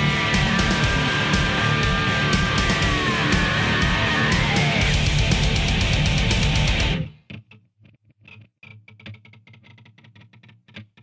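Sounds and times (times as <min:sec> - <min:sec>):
low held pitch: 0:00.0 - 0:07.0
plucked guitar notes: 0:00.0 - 0:07.1
distorted heavy metal: 0:00.0 - 0:07.2.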